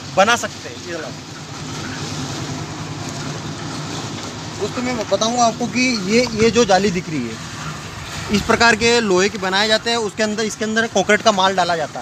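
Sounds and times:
engine running steadily: 0.0s - 12.0s.

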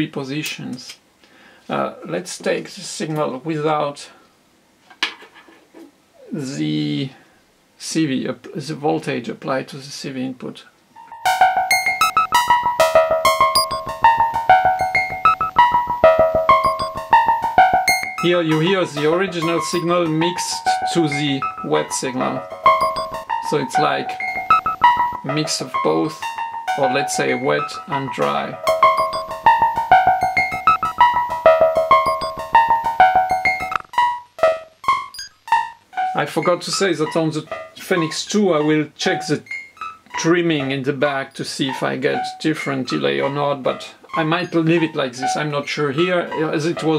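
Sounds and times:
synthesizer sequence of bright notes: 11.1s - 27.7s, 28.5s - 34.1s
rapid ticking pulse: 11.3s - 18.7s, 22.4s - 23.4s, 24.2s - 25.4s, 28.7s - 33.9s.

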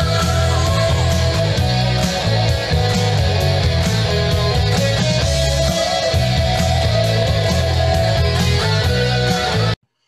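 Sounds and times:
rock music with electric guitar: 0.0s - 9.8s.

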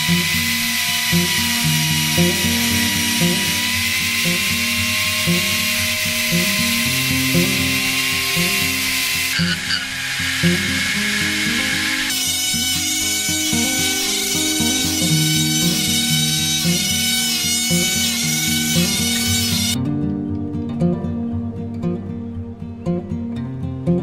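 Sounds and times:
power tools whining cutting wood: 0.0s - 19.8s
background music: 0.0s - 24.0s.

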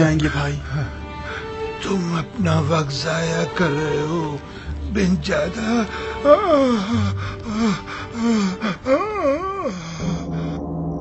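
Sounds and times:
gasping breaths: 5.9s - 10.4s
low drone: 7.1s - 11.0s.

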